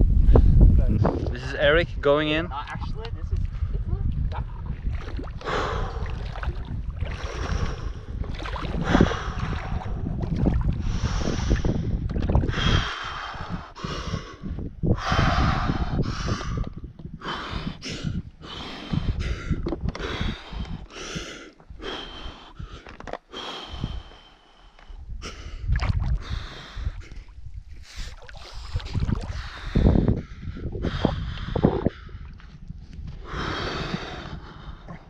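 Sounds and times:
wind buffeting microphone: 0:00.0 - 0:35.0
man gasping and breathing hard: 0:08.8 - 0:10.0, 0:10.8 - 0:32.4, 0:33.2 - 0:35.0.

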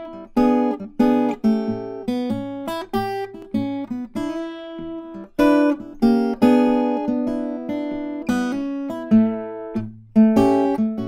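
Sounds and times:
fingerstyle acoustic guitar blues: 0:00.0 - 0:11.0.

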